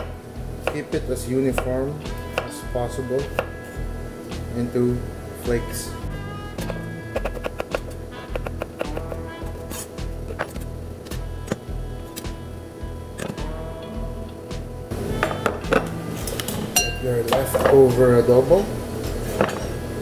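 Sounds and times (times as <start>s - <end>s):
background music with steady beat: 0.0s - 20.0s
knife tapping on cutting board: 6.6s - 9.2s.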